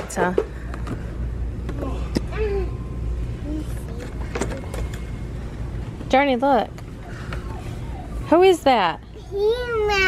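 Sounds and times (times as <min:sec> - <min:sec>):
low shop background rumble: 0:00.0 - 0:10.0.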